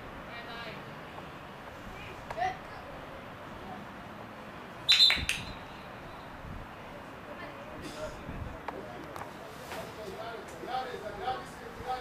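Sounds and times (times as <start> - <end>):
referee's whistle blasts: 4.9 - 5.6.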